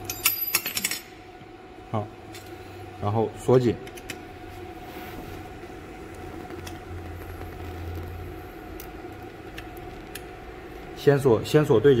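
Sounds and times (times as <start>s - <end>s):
equipment humming: 0.0s - 12.0s.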